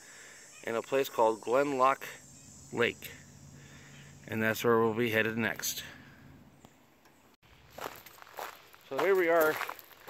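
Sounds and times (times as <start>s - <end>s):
footsteps on dirt trail: 7.5s - 10.0s.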